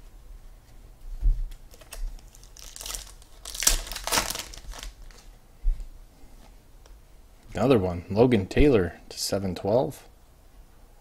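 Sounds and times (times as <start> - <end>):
hands handling trading cards: 1.5 - 5.3
packaging crinkling: 1.5 - 5.3.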